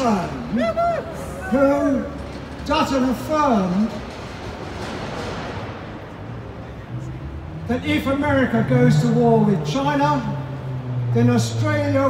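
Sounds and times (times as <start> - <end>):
distant city traffic: 0.0 - 12.0.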